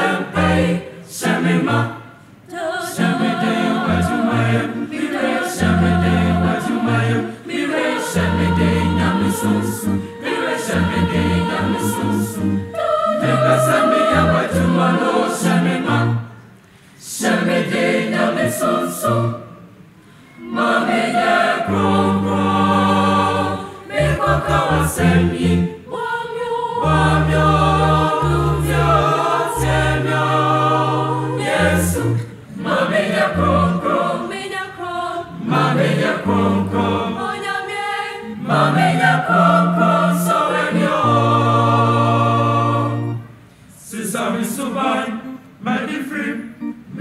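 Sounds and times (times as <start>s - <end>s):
choir singing gospel: 0.0s - 47.0s.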